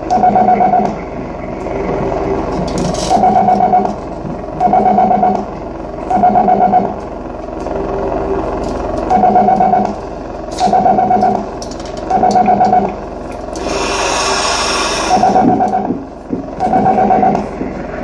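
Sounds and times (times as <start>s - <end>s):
pulsing electronic tone: 0.0s - 7.0s, 7.6s - 18.0s
low electronic drone: 0.0s - 18.0s
harsh noise burst: 13.6s - 16.0s.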